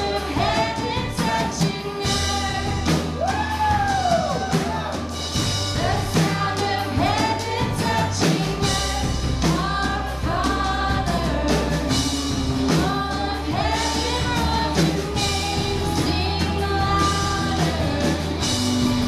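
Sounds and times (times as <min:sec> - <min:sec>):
bass and drum beat: 0:00.0 - 0:19.0
strummed guitars: 0:00.0 - 0:19.0
voices singing: 0:00.0 - 0:19.0.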